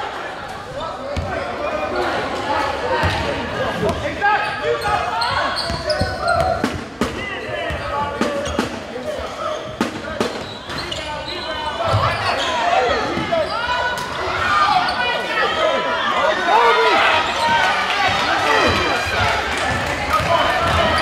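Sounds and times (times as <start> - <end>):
voices of players and crowd: 0.0 - 21.0.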